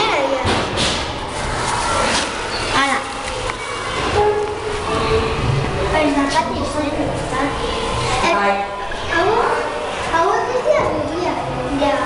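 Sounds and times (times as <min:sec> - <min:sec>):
children's voices: 0:00.0 - 0:00.7, 0:01.3 - 0:12.0
low rumble: 0:04.8 - 0:10.2.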